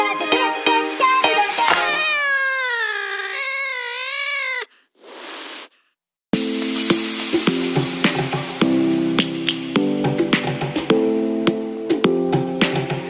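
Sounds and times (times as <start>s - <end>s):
wavering meow-like call: 1.7s - 4.7s
plucked background music: 6.4s - 13.0s.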